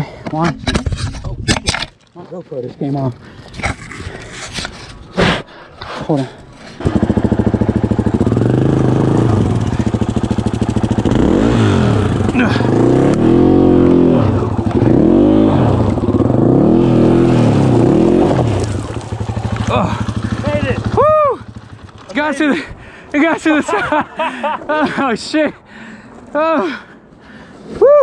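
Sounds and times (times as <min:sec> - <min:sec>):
dirt bike engine revving: 0:06.8 - 0:22.2
person shouting: 0:19.7 - 0:21.5.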